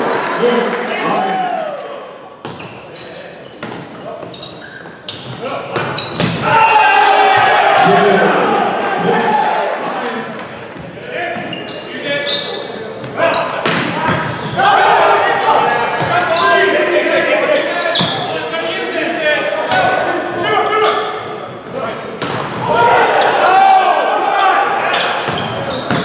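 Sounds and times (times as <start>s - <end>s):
sneakers squeaking on court: 2.4s - 6.5s, 10.6s - 14.6s, 15.3s - 19.0s, 20.8s - 23.6s, 24.8s - 26.0s
players shouting: 5.5s - 10.4s, 13.2s - 21.2s, 22.5s - 26.0s.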